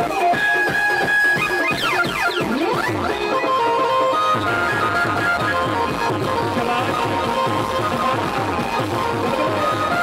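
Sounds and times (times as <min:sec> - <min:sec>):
band music over speakers: 0:00.0 - 0:10.0.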